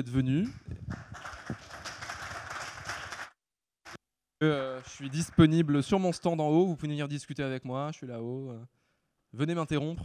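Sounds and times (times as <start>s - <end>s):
audience applauding: 0.9s - 3.4s, 4.6s - 6.2s.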